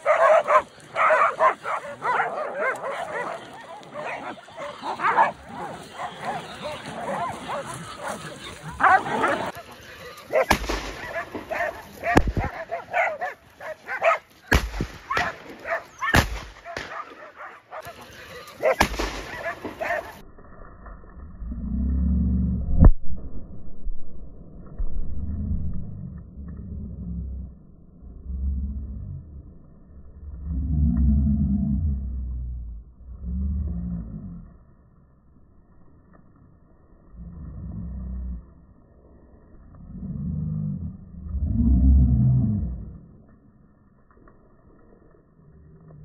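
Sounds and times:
wild boar deep growl: 0.0s - 14.1s, 26.0s - 34.6s, 37.0s - 43.3s
dogs barking and yelping: 0.0s - 14.4s, 15.0s - 20.2s
sharp bangs: 10.5s - 12.6s, 14.5s - 17.2s, 18.7s - 20.0s.

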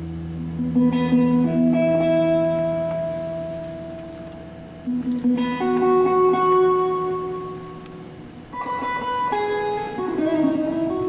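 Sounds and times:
harp guitar plucked notes: 0.0s - 11.0s.

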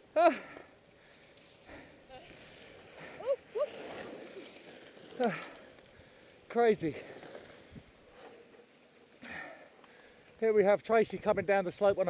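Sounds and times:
faint hiss: 0.0s - 12.0s.

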